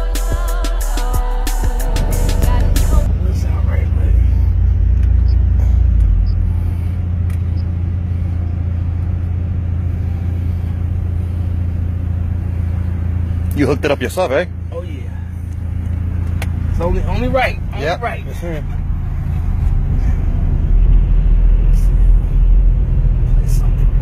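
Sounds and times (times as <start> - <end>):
hip-hop intro music: 0.0 - 3.4
subwoofers playing deep bass: 0.0 - 13.5, 15.7 - 24.0.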